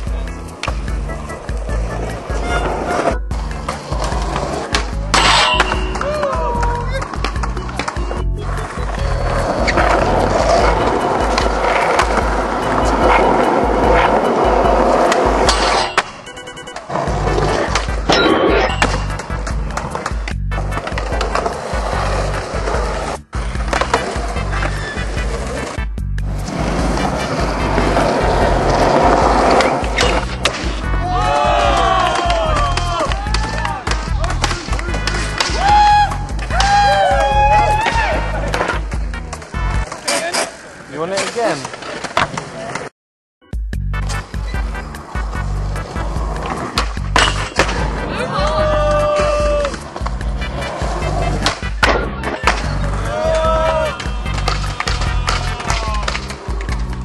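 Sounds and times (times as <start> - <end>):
skateboard wheels rolling on concrete: 0.0 - 18.1, 18.8 - 42.9, 44.0 - 57.0
skateboard knocking and landing: 0.5 - 40.3, 41.2 - 42.9, 44.4 - 57.0
music with bass beat: 43.4 - 57.0.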